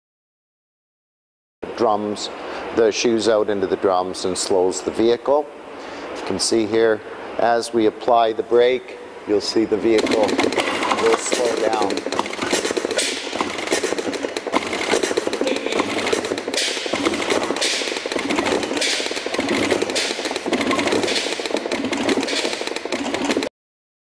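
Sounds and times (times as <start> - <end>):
rapid air valve clicking: 9.9 - 23.5
air hissing: 10.0 - 23.2.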